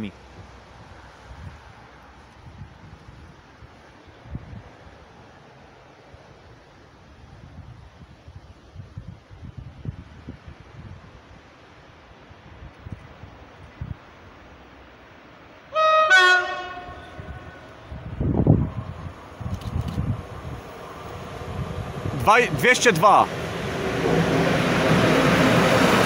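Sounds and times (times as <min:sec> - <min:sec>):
freight train rumble: 0:15.6 - 0:26.0
locomotive horn blast: 0:15.7 - 0:17.9.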